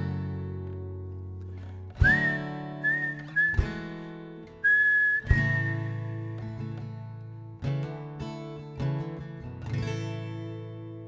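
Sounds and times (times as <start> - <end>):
acoustic guitar strummed chords: 0.0 - 11.0
whistled melody: 2.0 - 6.5.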